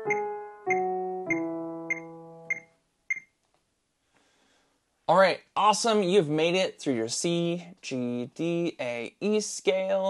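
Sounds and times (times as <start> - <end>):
digital piano note: 0.0 - 2.7
metronome clicks: 0.0 - 3.2.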